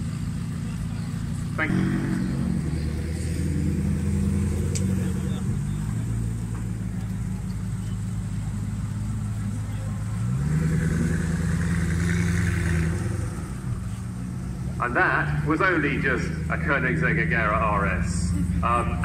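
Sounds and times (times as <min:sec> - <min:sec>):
car engine at low revs passing: 0:00.0 - 0:19.0.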